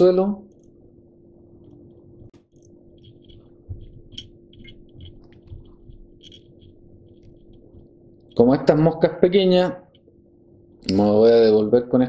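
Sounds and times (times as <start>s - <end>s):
steady hum: 0.0s - 12.0s
fingers ticking and rustling: 1.6s - 8.6s.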